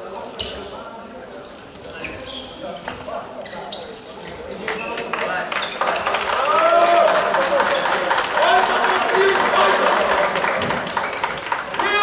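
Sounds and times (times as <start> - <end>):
shouting and echoing voices: 8.3 - 10.6, 11.7 - 12.0.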